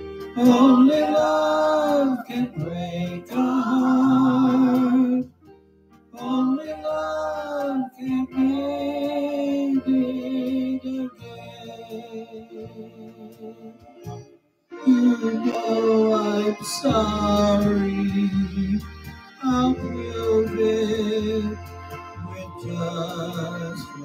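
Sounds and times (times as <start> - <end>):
backing track: 0.0 - 24.0
man singing a love song: 0.3 - 5.3, 6.2 - 13.2, 14.8 - 24.0.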